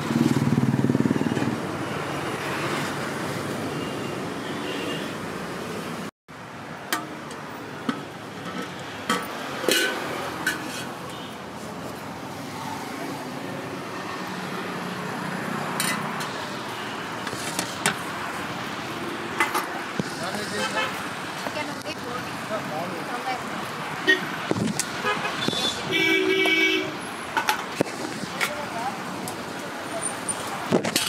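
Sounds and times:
traffic noise: 0.0s - 31.0s
vehicle horn honking: 25.0s - 27.0s.

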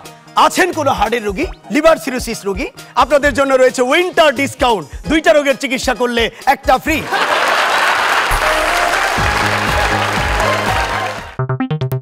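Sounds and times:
audience applauding: 7.0s - 11.4s.

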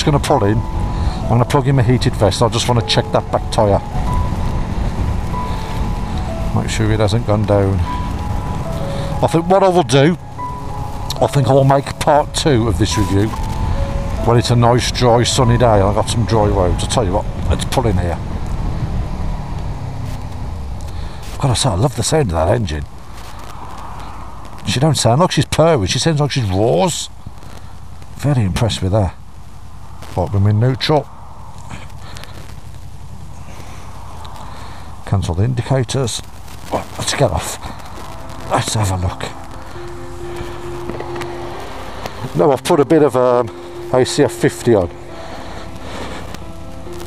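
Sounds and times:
wind and road noise: 0.0s - 47.0s.

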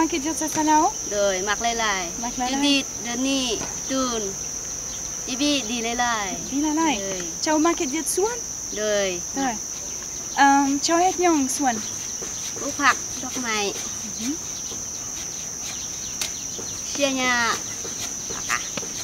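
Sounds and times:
woman talking: 0.0s - 4.4s, 5.3s - 9.6s, 10.4s - 11.8s, 12.6s - 14.4s, 16.9s - 17.7s
insects droning: 0.0s - 19.0s.

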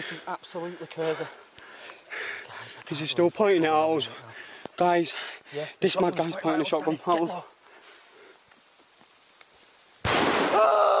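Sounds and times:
man shouting: 10.5s - 11.0s.

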